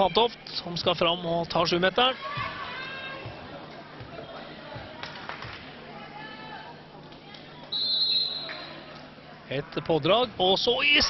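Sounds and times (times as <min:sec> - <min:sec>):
faint voices in a hall: 0:00.0 - 0:11.0
referee whistle blast: 0:07.8 - 0:08.5.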